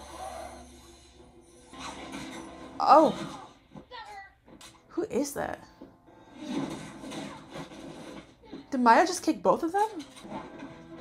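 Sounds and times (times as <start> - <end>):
action film score: 0.0 - 11.0
fight sound effects: 6.4 - 8.6.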